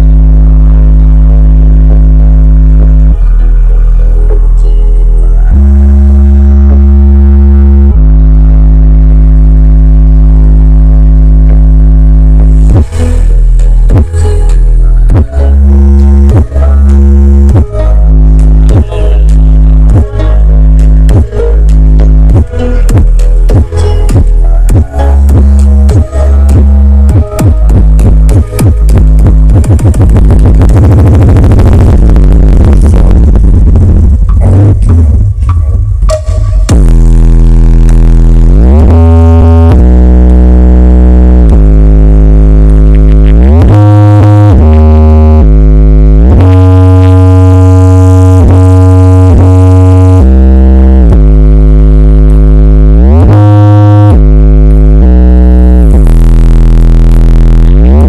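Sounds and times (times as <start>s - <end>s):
loud bass-heavy music: 0.0s - 58.0s.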